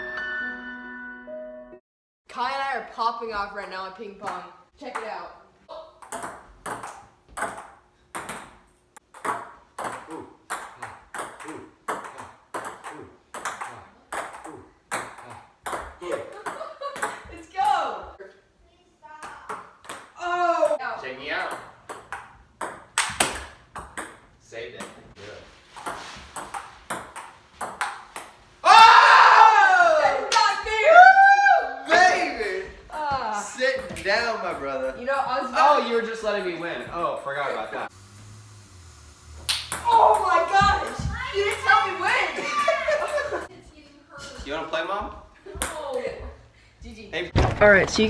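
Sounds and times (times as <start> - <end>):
people shouting: 28.6 - 32.5, 39.8 - 43.4.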